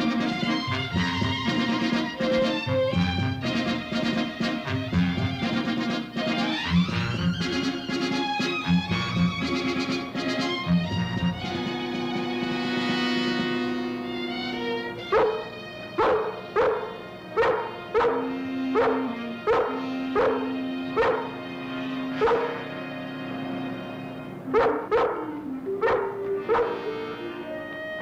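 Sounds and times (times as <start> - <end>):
orchestral held chords: 0.0 - 28.0
sharp accented orchestral notes: 0.0 - 28.0.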